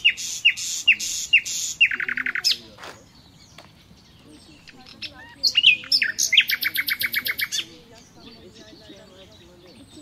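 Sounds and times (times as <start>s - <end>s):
faint bird calls: 0.0s - 10.0s
songbird singing: 0.0s - 10.0s.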